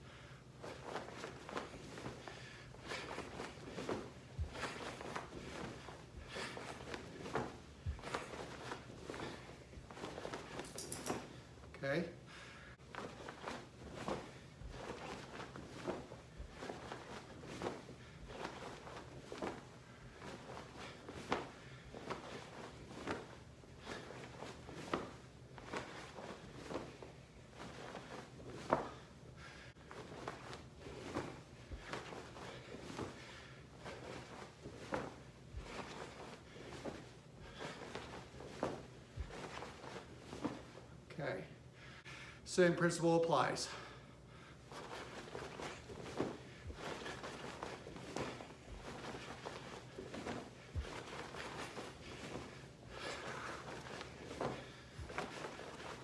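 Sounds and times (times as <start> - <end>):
uniform swishes: 0.0 - 11.7, 12.7 - 41.1, 44.6 - 56.0
feet thumping: 0.5 - 11.6, 12.8 - 41.0, 44.6 - 56.0.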